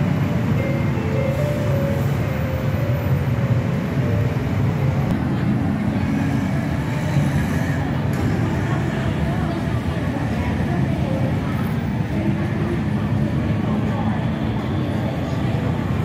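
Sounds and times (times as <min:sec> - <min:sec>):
crowd chatter: 0:00.0 - 0:16.0
heavy city traffic roar: 0:00.0 - 0:16.0.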